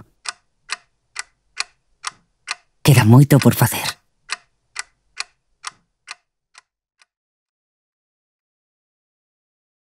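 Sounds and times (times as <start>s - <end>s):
clock ticking: 0.0s - 7.2s.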